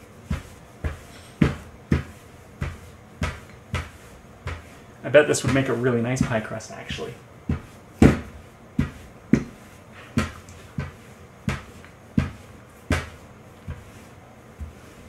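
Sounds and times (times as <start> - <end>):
rolling pin knocking on wood: 0.3 - 4.7, 5.4 - 6.5, 7.5 - 9.6, 10.2 - 13.9.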